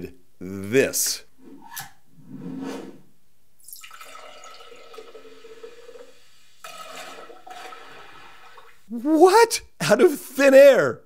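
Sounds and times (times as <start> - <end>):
fizzing liquid pouring: 3.6 - 8.9.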